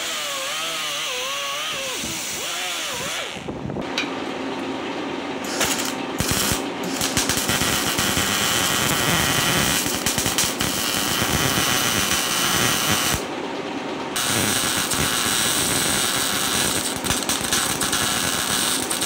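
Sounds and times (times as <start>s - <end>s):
air tool winding down: 0.0s - 3.5s, 5.4s - 13.2s, 14.2s - 19.0s
welder arc crackling: 5.4s - 13.3s, 14.2s - 19.0s.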